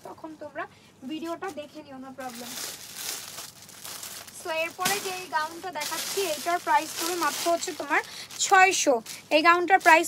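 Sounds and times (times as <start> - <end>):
woman speaking: 0.0 - 2.7, 4.4 - 10.0
crinkling and rustling: 1.4 - 10.0.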